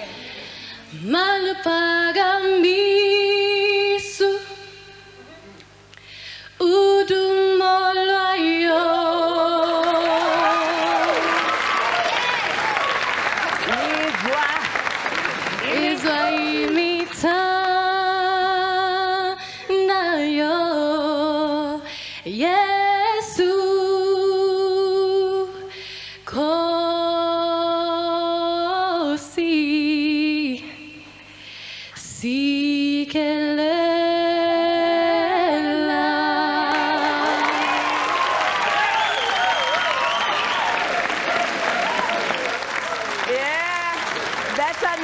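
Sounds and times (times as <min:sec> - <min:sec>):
woman singing a cappella: 0:00.9 - 0:05.3, 0:06.6 - 0:10.8, 0:15.6 - 0:31.3, 0:32.0 - 0:38.1
audience cheering and applauding: 0:09.6 - 0:17.8, 0:36.6 - 0:45.0.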